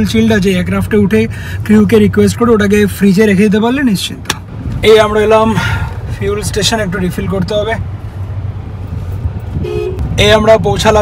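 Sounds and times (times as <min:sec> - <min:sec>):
car rumble inside cabin: 0:00.0 - 0:11.0
car horn beep: 0:09.6 - 0:10.0.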